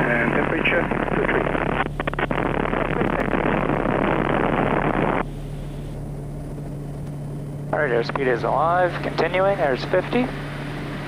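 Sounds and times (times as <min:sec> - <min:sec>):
turboprop engine and propeller roaring: 0:00.0 - 0:11.0.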